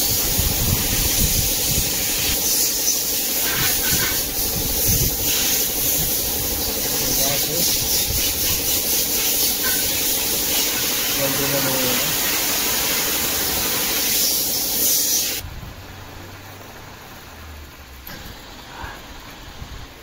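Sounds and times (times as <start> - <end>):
loud hissing noise: 0.0 - 20.0.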